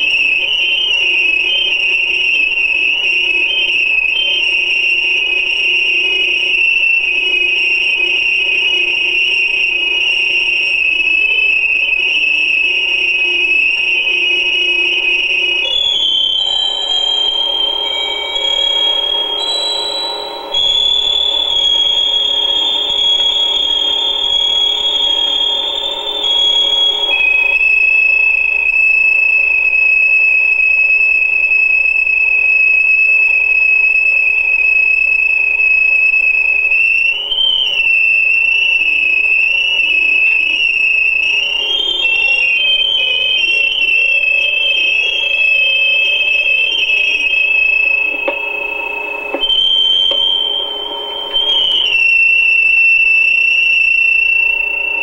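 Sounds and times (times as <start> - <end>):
high-pitched electronic tones: 15.6 - 27.6, 41.6 - 52.2.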